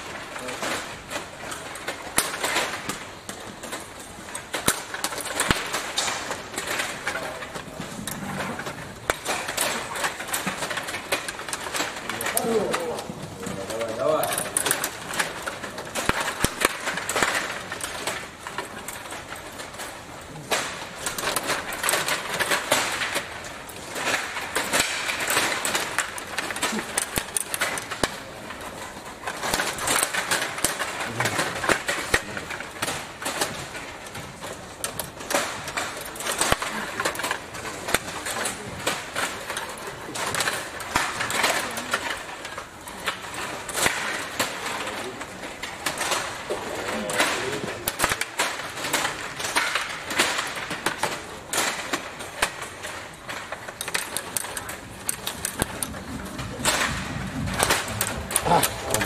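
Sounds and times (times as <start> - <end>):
table hockey game clatter: 0.0 - 59.0.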